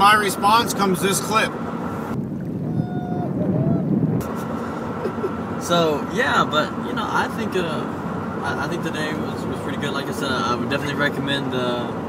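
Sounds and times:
water rushing around kayak: 1.8 - 6.2
wind on microphone: 2.1 - 4.6.

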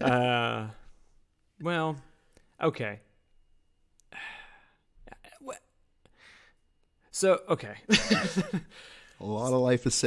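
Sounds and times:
person sighing: 4.1 - 5.5.

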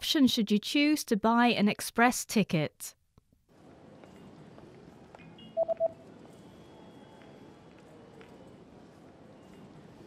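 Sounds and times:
low steady background noise: 0.0 - 10.0
electronic keypad beeps: 5.4 - 6.0.

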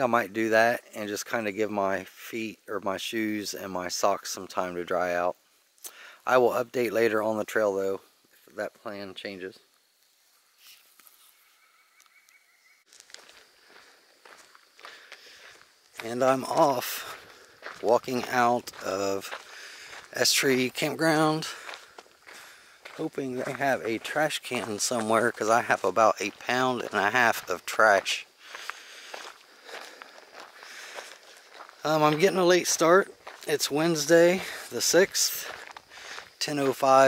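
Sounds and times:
footsteps on gravel: 12.9 - 37.0.

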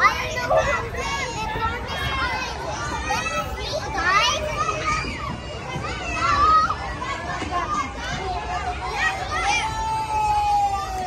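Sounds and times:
background chatter: 0.0 - 11.0
children calling: 0.0 - 11.0.

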